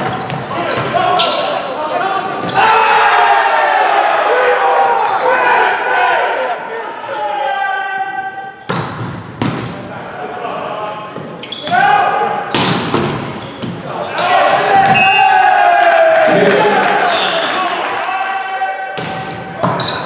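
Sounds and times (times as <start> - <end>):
players calling and shouting: 10.1 - 20.0.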